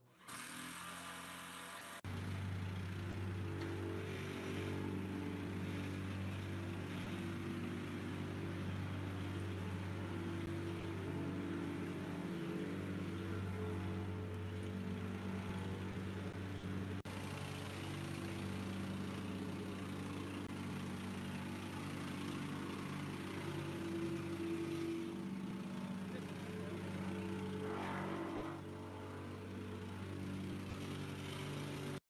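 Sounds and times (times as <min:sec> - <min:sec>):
truck engine idling: 0:02.1 - 0:32.0.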